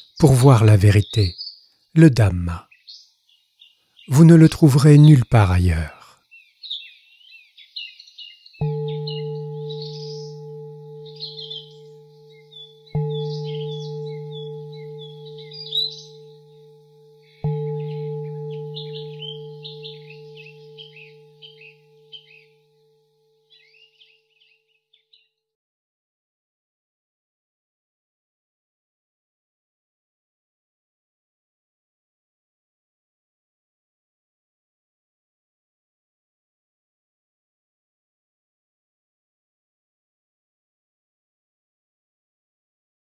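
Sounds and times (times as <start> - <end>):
birds chirping: 0.0 - 22.8, 23.4 - 25.4
singing bowl ringing: 8.6 - 24.3.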